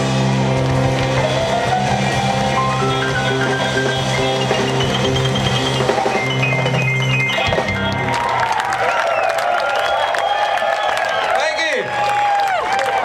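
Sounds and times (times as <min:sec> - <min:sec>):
live band playing: 0:00.0 - 0:09.8
crowd clapping and cheering: 0:00.0 - 0:13.0.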